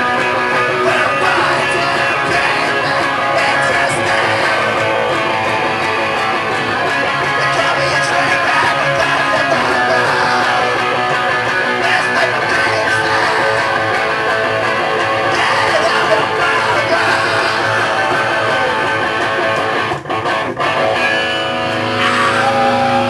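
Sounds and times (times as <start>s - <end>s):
electric guitars strumming: 0.0s - 23.0s.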